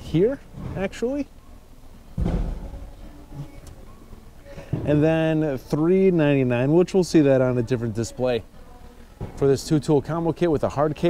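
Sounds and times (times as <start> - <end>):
faint background noise: 0.0 - 11.0
low thump and rumble: 2.2 - 2.9.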